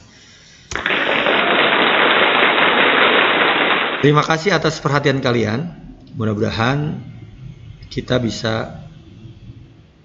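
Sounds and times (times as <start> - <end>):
dense steady crackling: 0.0 - 10.0.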